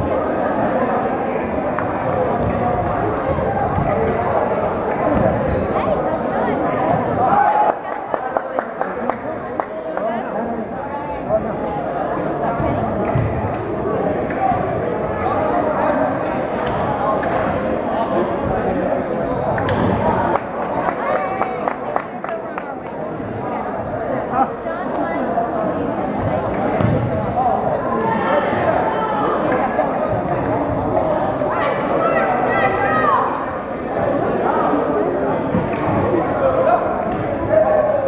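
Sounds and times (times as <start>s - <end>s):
many voices in echoing hall: 0.0s - 38.0s.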